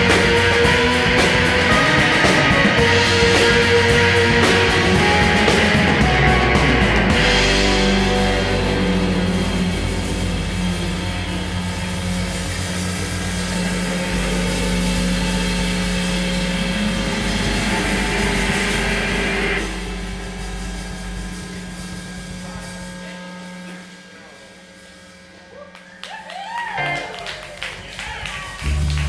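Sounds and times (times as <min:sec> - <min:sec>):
droning electric guitar: 0:00.0 - 0:23.9, 0:26.8 - 0:27.5.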